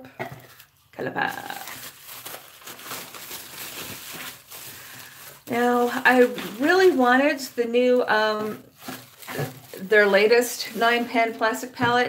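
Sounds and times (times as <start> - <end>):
package being torn open: 1.4 - 5.5.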